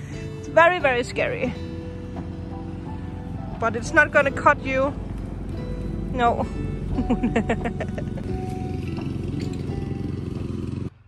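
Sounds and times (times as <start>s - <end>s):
lawn mower running: 1.6s - 11.0s.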